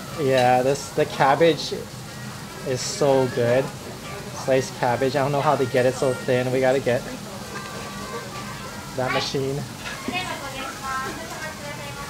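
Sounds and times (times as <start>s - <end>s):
faint background music: 0.0s - 12.0s
restaurant room noise: 0.0s - 12.0s.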